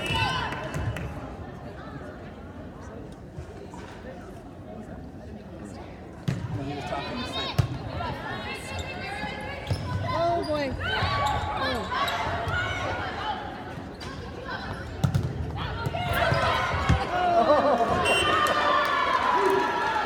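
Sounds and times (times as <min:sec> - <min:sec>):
players calling and shouting: 0:06.5 - 0:20.0.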